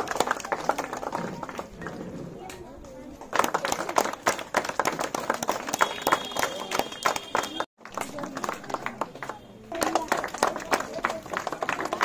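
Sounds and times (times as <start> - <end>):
people clapping: 0.0 - 2.0, 3.1 - 12.0
voices: 0.0 - 12.0.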